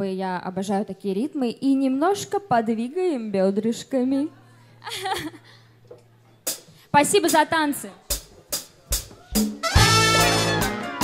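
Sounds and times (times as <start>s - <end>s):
woman speaking over a microphone: 0.0s - 4.6s, 6.9s - 8.1s.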